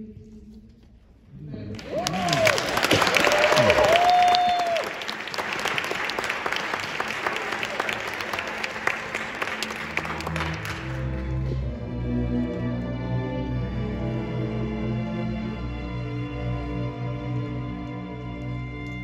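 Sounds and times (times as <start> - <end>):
audience applauding and cheering: 1.7 - 11.5
string orchestra sustained notes: 6.0 - 19.0.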